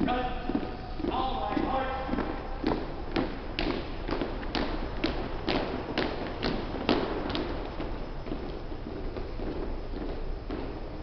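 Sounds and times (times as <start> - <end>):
marching footsteps on hardwood floor: 0.0 - 11.0.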